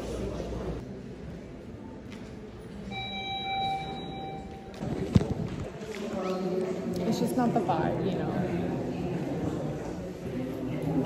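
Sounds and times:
low background murmur: 0:00.0 - 0:11.0.

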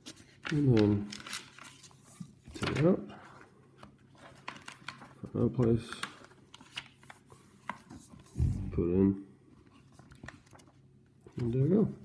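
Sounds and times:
paper sheet handling: 0:00.0 - 0:08.6, 0:09.6 - 0:12.0.

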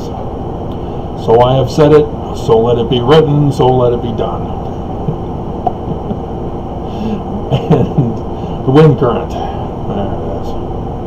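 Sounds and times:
low room hum: 0:00.0 - 0:11.0
man chuckling quietly: 0:04.9 - 0:08.6.

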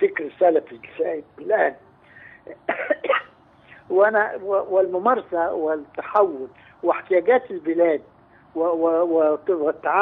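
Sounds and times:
man coughing: 0:02.5 - 0:03.4.

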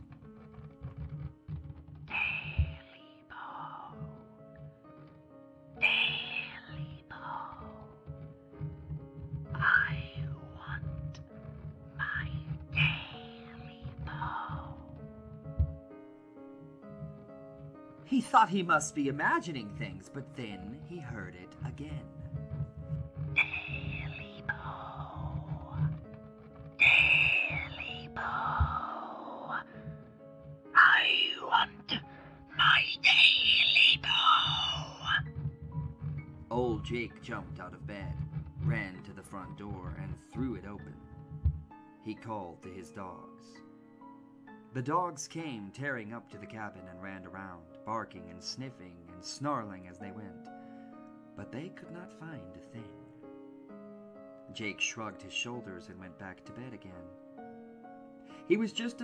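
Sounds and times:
hissing creature calls: 0:02.1 - 0:03.9, 0:05.8 - 0:07.5, 0:12.0 - 0:14.7, 0:23.4 - 0:25.8, 0:26.8 - 0:29.8, 0:32.6 - 0:35.3.

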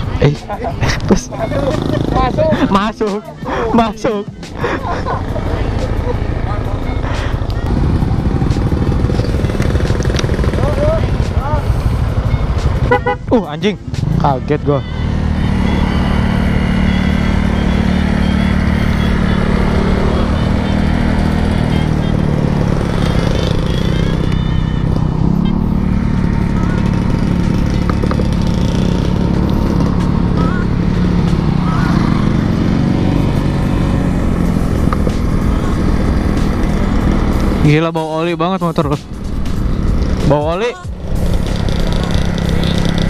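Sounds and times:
scooter engine running: 0:00.0 - 0:43.0.

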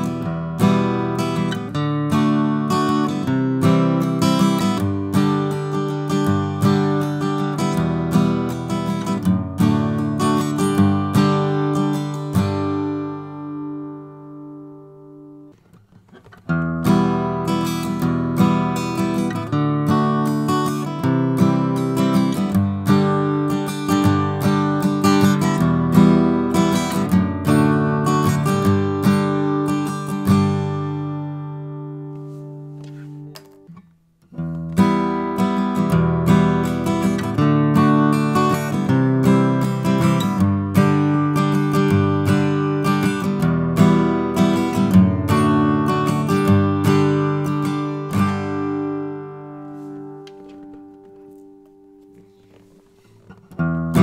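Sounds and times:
acoustic guitar strumming: 0:00.0 - 0:54.0.

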